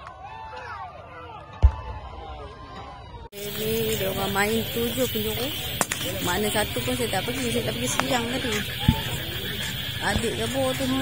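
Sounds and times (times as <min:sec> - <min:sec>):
distant crowd voices: 0:00.1 - 0:11.0
loud steady hiss: 0:03.4 - 0:11.0.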